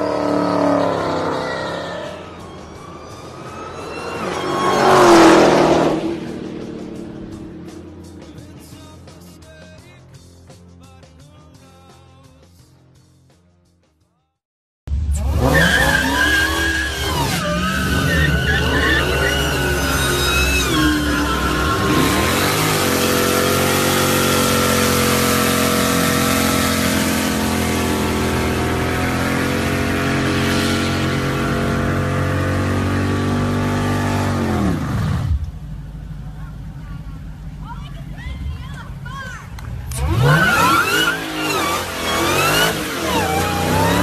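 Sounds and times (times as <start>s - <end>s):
car engine revving: 0.0s - 9.3s, 14.9s - 44.0s.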